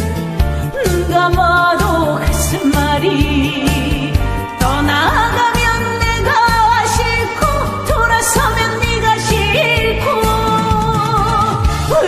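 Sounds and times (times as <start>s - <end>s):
backing track with steady beat: 0.0s - 12.0s
woman singing into microphone: 0.6s - 12.0s.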